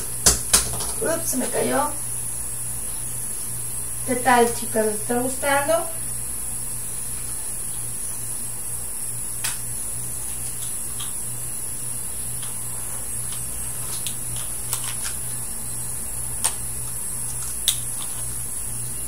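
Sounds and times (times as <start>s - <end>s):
electrical hum and hiss: 0.0s - 19.0s
thin high whine: 0.0s - 19.0s.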